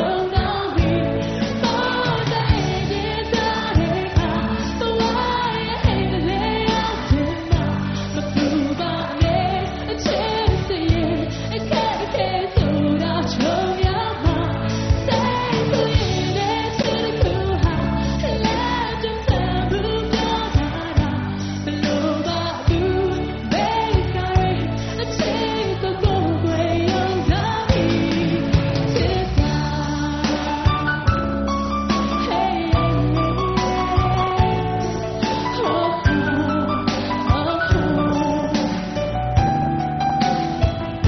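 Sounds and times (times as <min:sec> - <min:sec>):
woman singing pop song: 0:00.0 - 0:39.6
band with electric guitars and drums: 0:00.0 - 0:41.0.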